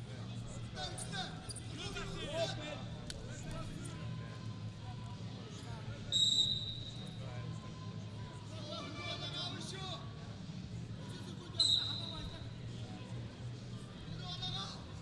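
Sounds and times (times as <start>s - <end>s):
low arena hum: 0.0s - 15.0s
referee's whistle blast: 6.1s - 6.9s, 11.6s - 12.3s.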